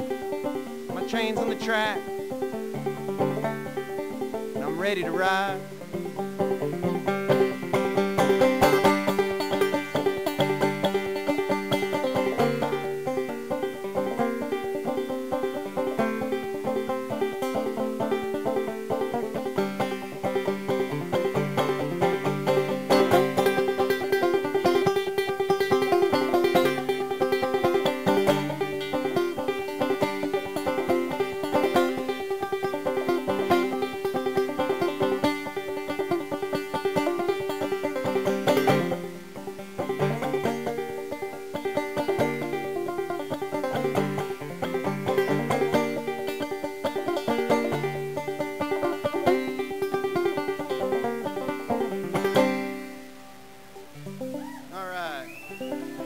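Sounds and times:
fast banjo picking: 0.0s - 54.5s, 55.4s - 56.0s.

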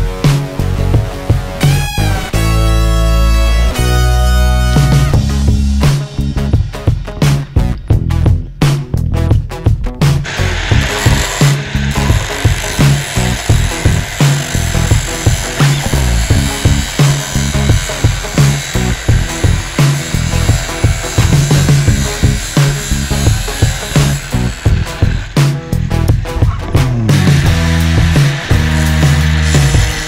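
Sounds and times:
background music with steady beat: 0.0s - 30.0s
cut-off disc grinding steel: 10.2s - 30.0s.

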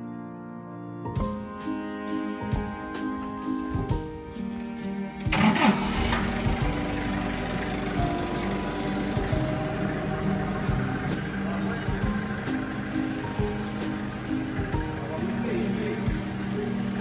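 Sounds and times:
background music: 0.0s - 17.0s
forklift engine running: 1.3s - 17.0s.

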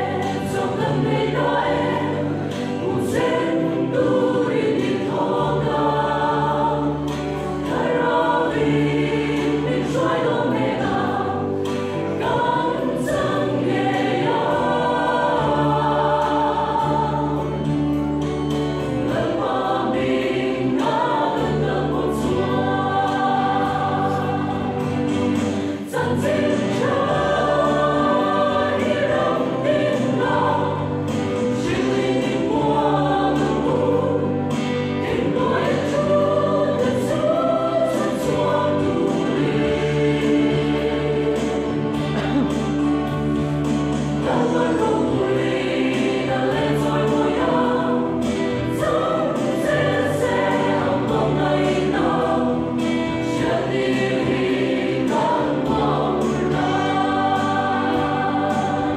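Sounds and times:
mixed choir singing gospel: 0.0s - 58.9s.

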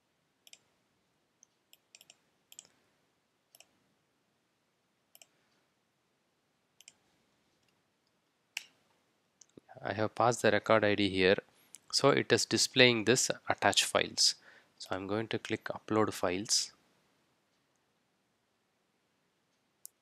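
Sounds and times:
keyboard and mouse clicks: 0.4s - 0.7s, 1.4s - 2.8s, 3.5s - 3.8s, 5.1s - 5.4s, 6.8s - 7.0s.

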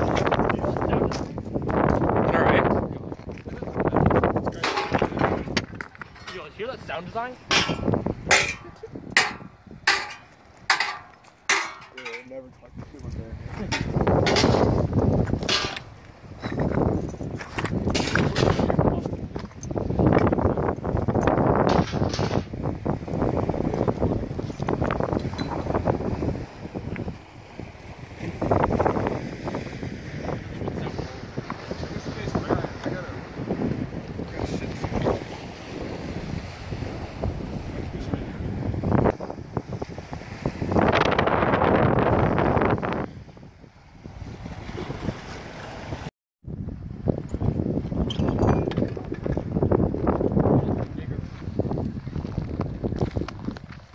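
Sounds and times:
gusty wind on microphone: 0.0s - 53.9s
footsteps on loose stones: 1.0s - 4.5s, 15.0s - 19.8s, 49.4s - 53.9s.

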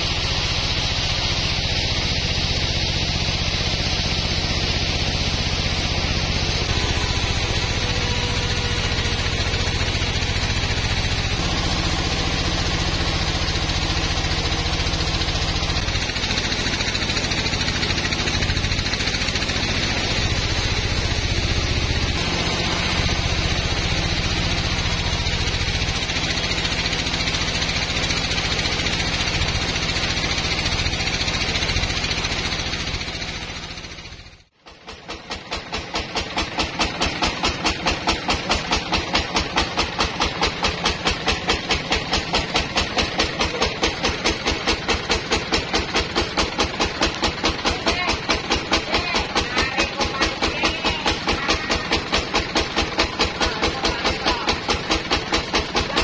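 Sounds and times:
saw blade cutting log: 0.0s - 56.0s
sawmill machine hum: 0.0s - 56.0s.

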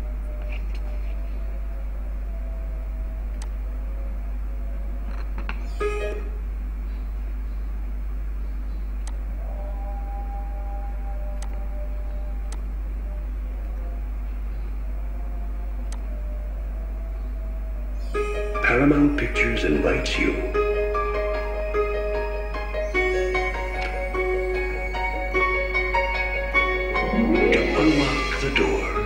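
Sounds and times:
steady low hum: 0.0s - 29.0s
faint held tones: 27.0s - 28.8s.

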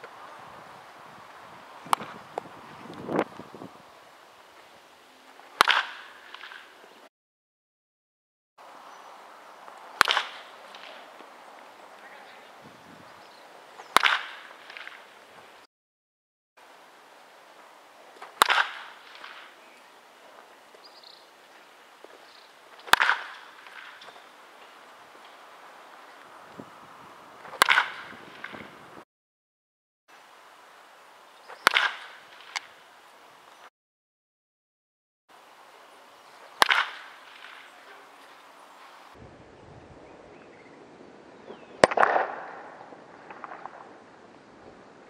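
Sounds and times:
bat cracking a ball: 1.8s - 3.3s, 5.4s - 6.7s, 9.9s - 11.3s, 13.8s - 15.1s, 18.2s - 19.6s, 22.1s - 25.4s, 27.4s - 28.8s, 31.5s - 32.8s, 36.5s - 37.8s, 41.8s - 44.0s.

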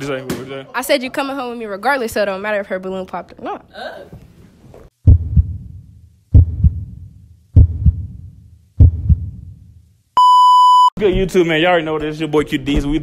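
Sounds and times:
heartbeat thumps: 5.0s - 9.7s.

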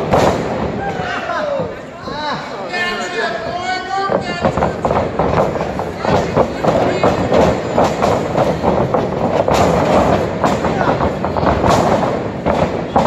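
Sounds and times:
wrestling ring thuds and rattling: 0.0s - 0.9s, 4.0s - 13.0s
crowd shouting: 0.0s - 4.7s
sharp knocks: 4.1s - 13.0s.

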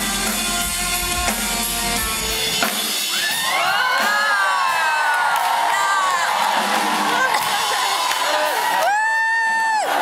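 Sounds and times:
concert audience cheering: 0.0s - 10.0s
high-pitched whoops: 8.4s - 10.0s.

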